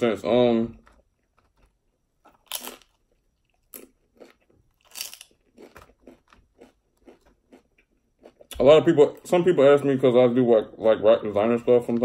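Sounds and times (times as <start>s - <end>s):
crunchy bites of chicken: 2.4s - 3.0s, 3.7s - 8.6s.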